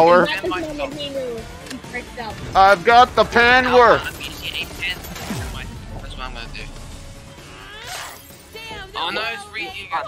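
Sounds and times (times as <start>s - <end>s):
cartoon soundtrack music: 0.0s - 10.0s
sharp sound-effect hits: 5.1s - 8.3s.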